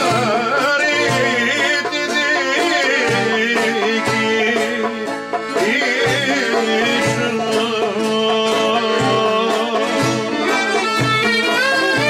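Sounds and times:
folk band playing: 0.0 - 12.0
lute strumming: 0.0 - 12.0
man singing folk melody: 0.0 - 12.0.

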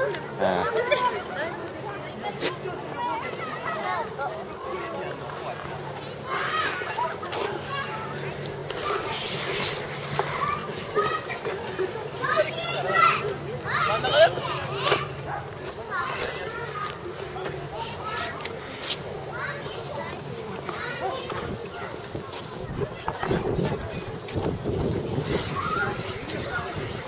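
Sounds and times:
skate wheels rolling on concrete: 0.0 - 27.0
young people talking and calling: 0.0 - 27.0.

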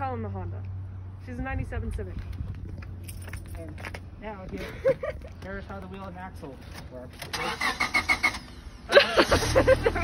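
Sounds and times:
engine cranking by starter: 7.2 - 10.0.

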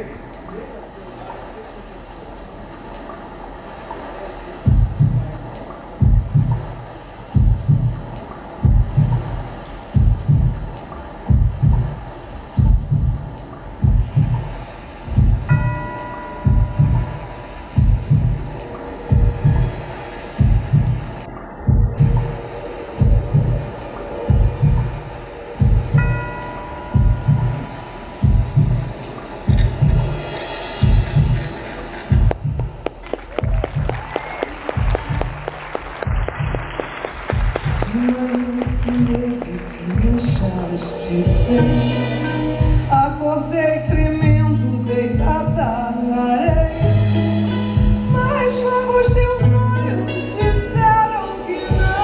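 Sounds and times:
drums and bass thumping: 3.8 - 52.0
fast repeated drum strikes: 4.6 - 44.6, 46.4 - 49.8, 50.4 - 52.0
sustained guitar notes: 40.4 - 46.0.

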